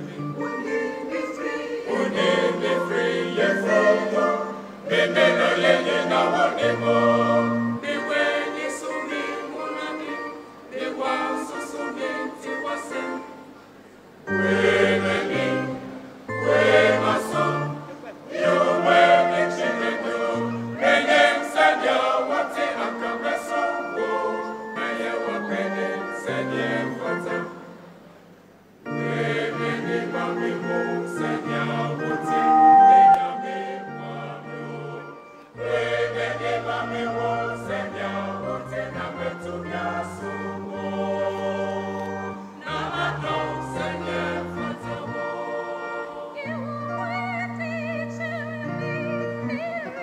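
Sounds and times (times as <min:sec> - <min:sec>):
choir singing gospel in harmony: 0:00.0 - 0:28.2, 0:28.8 - 0:50.0.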